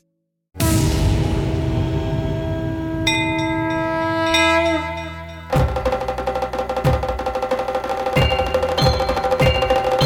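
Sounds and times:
higher bell struck: 0.6s - 5.7s.

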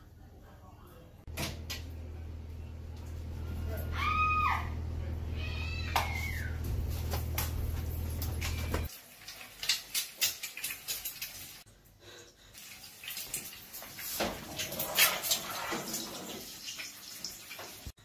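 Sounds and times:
steady low hum: 0.0s - 8.9s
oil sizzling in a frying pan: 8.9s - 11.7s, 12.6s - 14.4s, 15.0s - 18.0s.

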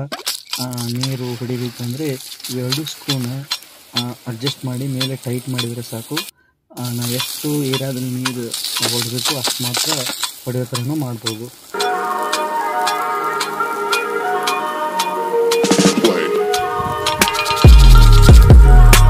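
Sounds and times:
sprinkler clicks: 0.0s - 19.0s
sprinkler water spray hissing: 0.0s - 19.0s
music with steady notes: 11.7s - 19.0s.

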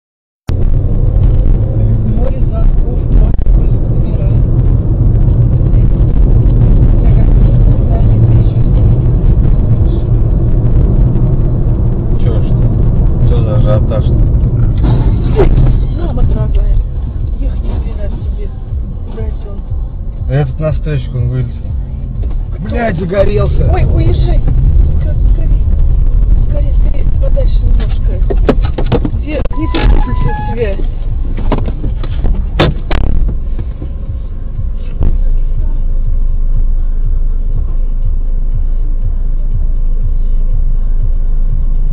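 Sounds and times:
car engine and road noise: 0.4s - 41.9s.

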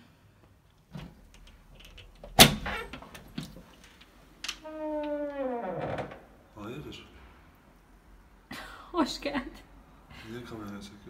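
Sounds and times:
door hinge squeaking: 4.6s - 6.3s.

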